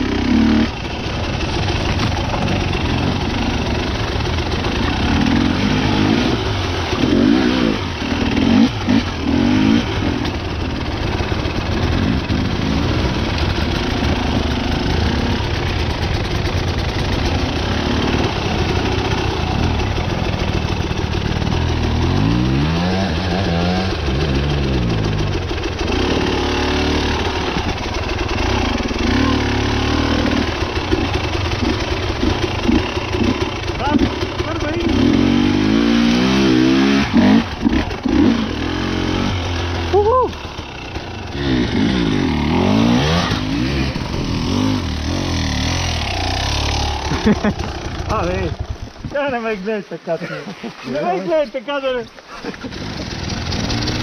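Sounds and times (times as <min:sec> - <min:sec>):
dirt bike engine revving: 0:00.0 - 0:49.6, 0:52.3 - 0:54.0.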